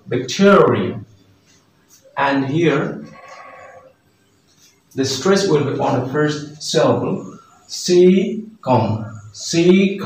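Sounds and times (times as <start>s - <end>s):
faint animal bleat: 2.9s - 4.0s.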